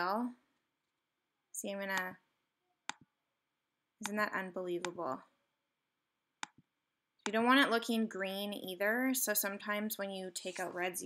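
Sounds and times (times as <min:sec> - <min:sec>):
computer mouse click: 0:06.4 - 0:06.6.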